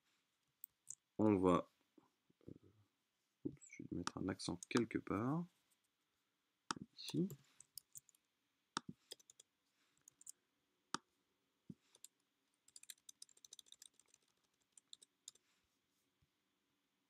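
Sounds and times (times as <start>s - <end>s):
faint keyboard typing: 6.7s - 8.2s, 8.8s - 10.4s, 11.7s - 15.5s
computer clicks: 8.8s - 9.5s.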